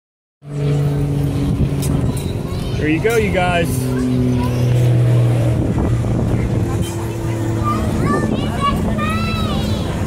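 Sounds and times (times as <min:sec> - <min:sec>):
carousel machinery humming: 0:00.4 - 0:10.0.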